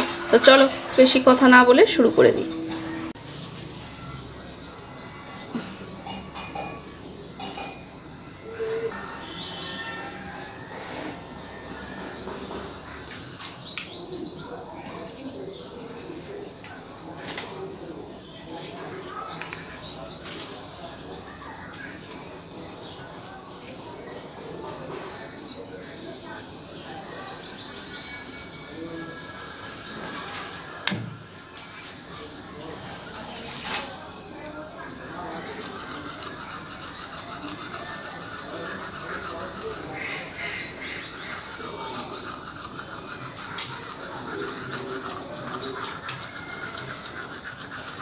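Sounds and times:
small birds chirping: 0:00.2 - 0:48.0
toothbrush scrubbing teeth: 0:35.1 - 0:48.0.

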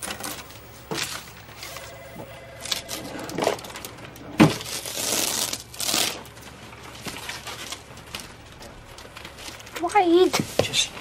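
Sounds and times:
faint clicks and rustles: 0:06.3 - 0:11.0.

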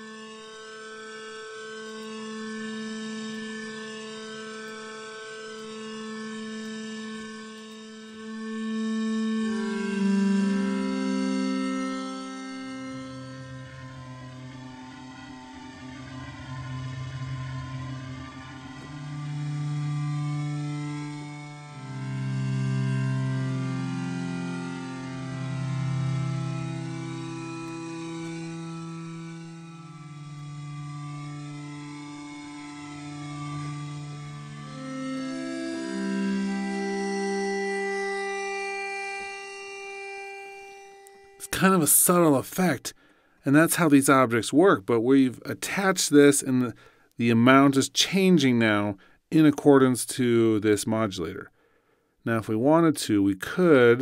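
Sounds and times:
synth bowed string chords: 0:00.0 - 0:51.4, 0:52.3 - 0:54.0.

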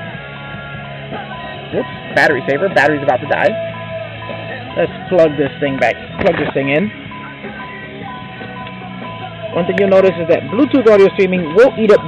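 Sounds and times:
guitar music over car stereo: 0:00.0 - 0:12.0.

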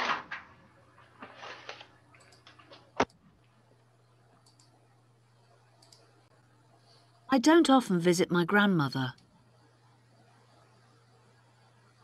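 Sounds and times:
low electrical hum: 0:00.0 - 0:12.0
computer mouse clicks: 0:02.2 - 0:03.2, 0:04.4 - 0:04.8, 0:05.7 - 0:06.1.

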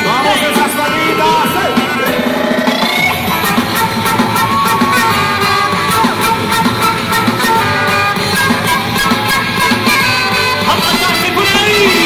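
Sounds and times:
drum kit: 0:00.0 - 0:12.0
electric guitars: 0:00.0 - 0:12.0
panpipe held notes: 0:01.8 - 0:12.0.

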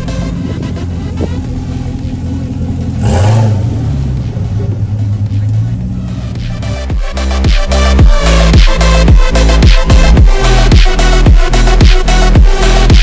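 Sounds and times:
electronic dance music: 0:00.0 - 0:02.5, 0:04.0 - 0:13.0
car engine revving: 0:00.0 - 0:13.0.

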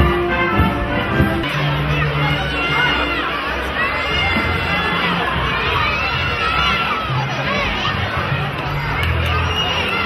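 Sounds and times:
band music with low notes: 0:00.0 - 0:10.0
children shouting and shrieking: 0:00.0 - 0:10.0
crowd noise: 0:00.0 - 0:10.0.

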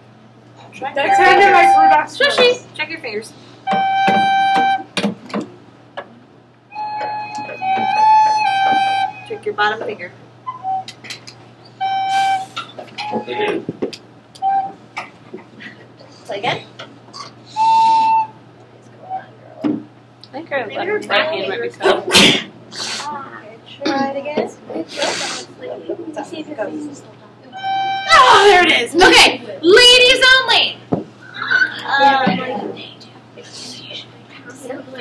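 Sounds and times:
voices: 0:00.6 - 0:04.2, 0:06.9 - 0:13.8, 0:14.4 - 0:35.0
recorders playing out of tune: 0:06.7 - 0:09.6.

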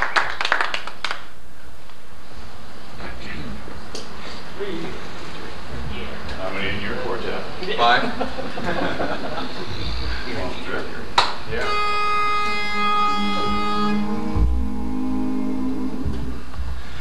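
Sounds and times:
pitch pipe reedy note: 0:11.6 - 0:16.5
singers humming low notes: 0:11.6 - 0:17.0.

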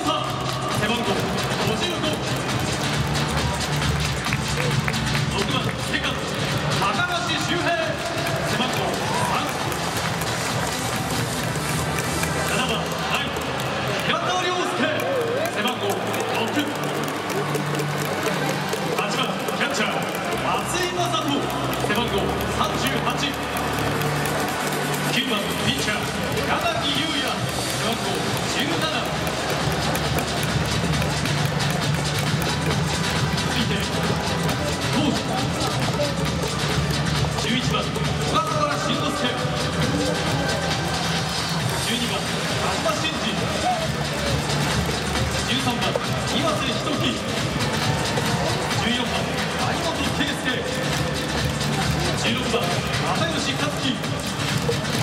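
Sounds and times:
stadium music over loudspeakers: 0:00.0 - 0:55.0.

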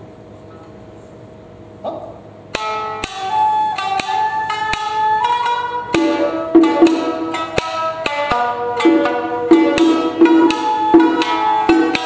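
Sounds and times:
plucked shamisen strikes: 0:02.5 - 0:12.0
shakuhachi melody: 0:02.6 - 0:12.0.

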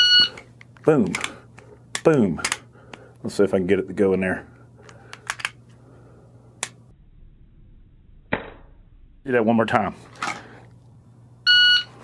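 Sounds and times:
pistol slide clicks: 0:05.1 - 0:05.6.

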